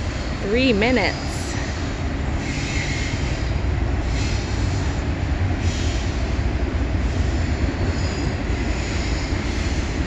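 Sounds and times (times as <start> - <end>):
train rumbling past: 0.0 - 10.0
train wheel squeal: 0.0 - 10.0.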